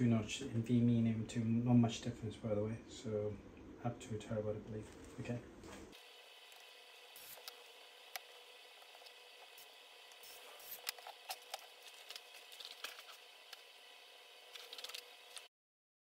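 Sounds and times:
steady low hiss: 0.0 - 15.0.

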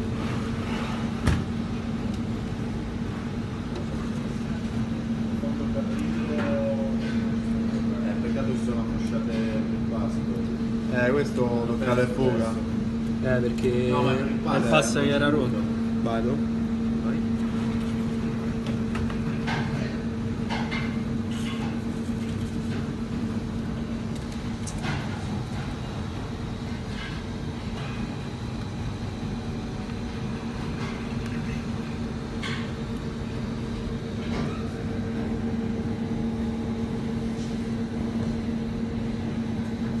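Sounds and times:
kitchen machinery humming: 0.0 - 40.0.

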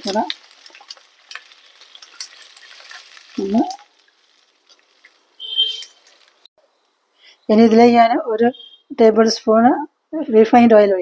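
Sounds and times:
water sizzling in a hot pan: 0.0 - 6.5.

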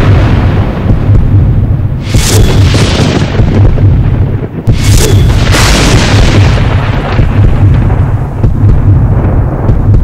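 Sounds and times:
deep pulsing rumble: 0.0 - 10.0
noisy booms: 0.0 - 10.0
sudden hit: 0.0 - 10.0.

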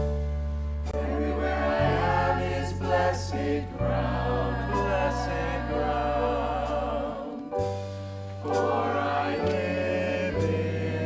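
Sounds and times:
choir singing in harmony: 0.9 - 11.0.

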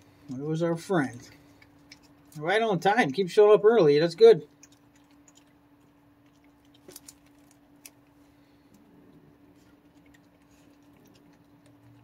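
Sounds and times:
cracker crunching: 0.0 - 2.5, 4.4 - 12.0
low hum: 3.6 - 12.0.

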